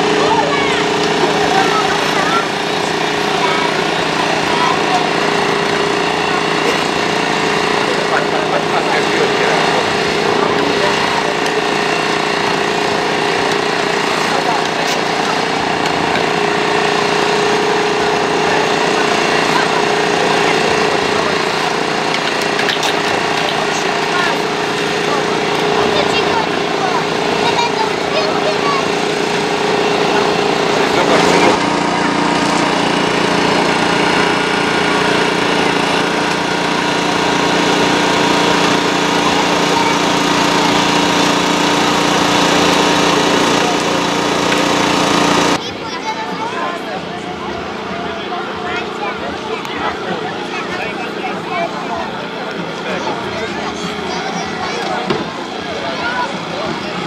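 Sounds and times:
small petrol engine running: 0:00.0 - 0:57.0.

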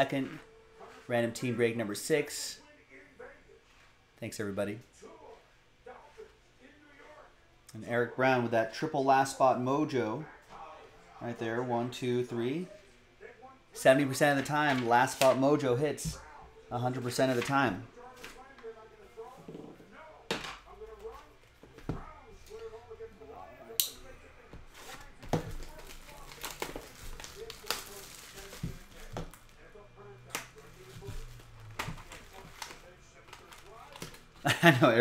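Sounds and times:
plastic wrap crinkling and tearing: 0:24.7 - 0:29.6, 0:30.3 - 0:34.6.

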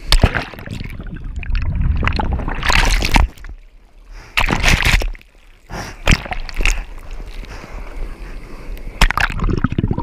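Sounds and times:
surf and churning water: 0:00.0 - 0:10.0.

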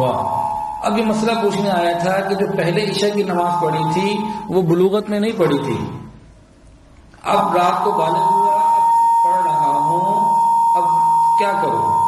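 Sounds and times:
high-pitched electronic tone: 0:00.0 - 0:05.1, 0:07.3 - 0:12.0
man lecturing: 0:00.0 - 0:06.2, 0:07.2 - 0:12.0.

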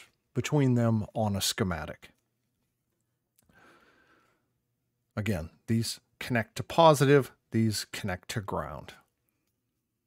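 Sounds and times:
faint exhaled breath: 0:03.5 - 0:04.5.

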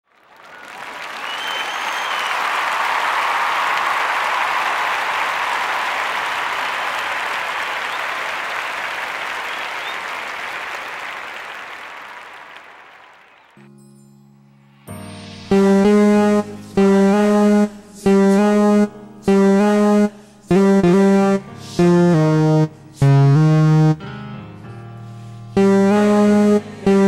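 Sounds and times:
crowd applause: 0:00.0 - 0:13.6.

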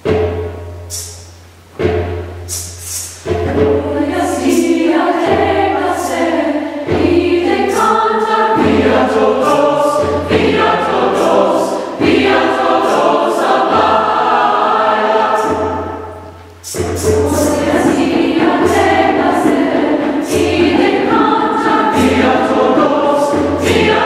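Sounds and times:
mixed choir singing: 0:03.4 - 0:24.0.

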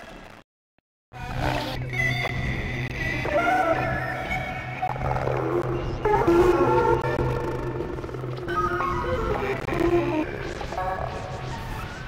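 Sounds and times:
electronic synthesizer tones: 0:04.8 - 0:12.0.

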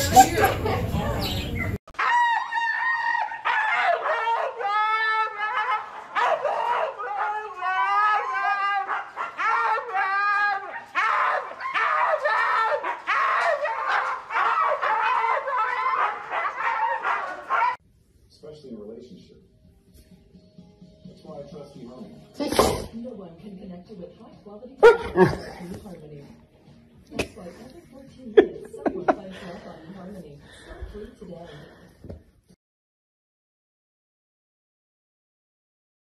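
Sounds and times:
dog howling and yowling: 0:02.0 - 0:17.8.

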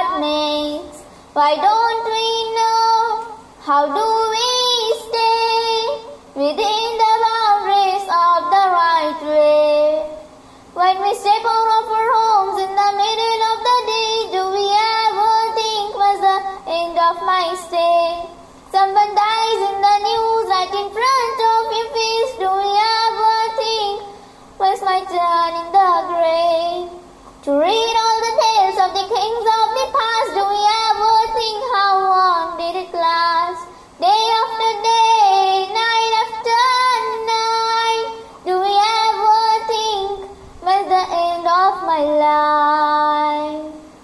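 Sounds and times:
girl singing devotional song: 0:00.0 - 0:44.0.

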